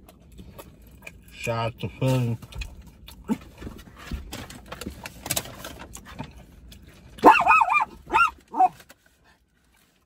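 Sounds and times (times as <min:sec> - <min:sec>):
person chewing: 0:02.4 - 0:03.6.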